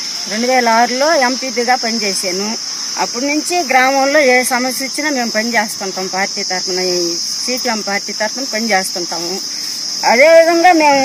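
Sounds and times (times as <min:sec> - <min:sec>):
high-pitched insect drone: 0:00.0 - 0:11.0
woman talking: 0:00.2 - 0:11.0.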